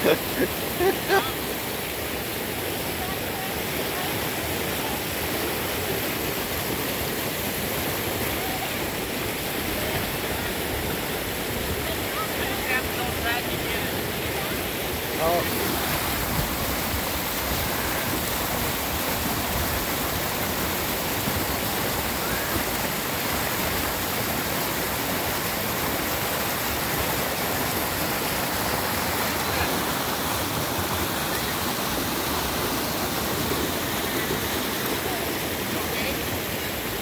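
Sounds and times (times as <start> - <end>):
water rushing over rocks: 0.0 - 37.0.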